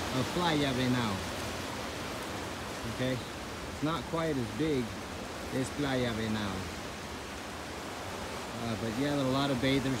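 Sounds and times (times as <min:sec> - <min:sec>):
ocean surf rushing: 0:00.0 - 0:10.0.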